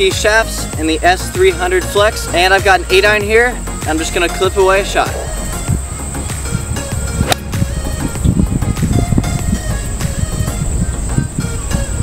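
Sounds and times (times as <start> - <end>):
background music: 0.0 - 12.0
golf club striking ball: 7.0 - 7.8.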